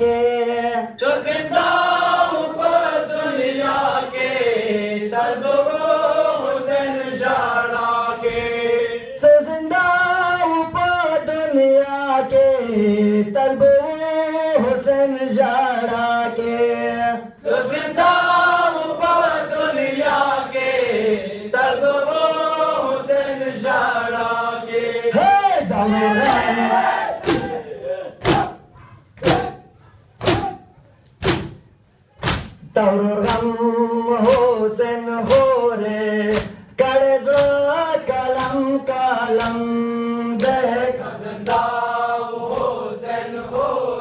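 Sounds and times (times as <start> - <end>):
men chanting a lament: 0.0 - 30.7, 32.7 - 44.0
crowd shouting together: 22.1 - 30.7, 40.5 - 44.0
men striking chests in unison: 26.1 - 33.6, 34.2 - 34.6, 35.2 - 35.6, 36.2 - 39.8
sharp smack: 29.2 - 29.5, 30.2 - 30.6, 31.2 - 31.6, 32.2 - 32.6.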